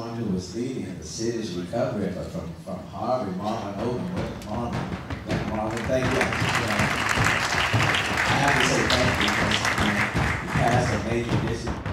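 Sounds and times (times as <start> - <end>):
voices: 0.0 - 7.1, 7.7 - 11.9
music: 3.8 - 11.9
audience applauding: 5.3 - 11.9.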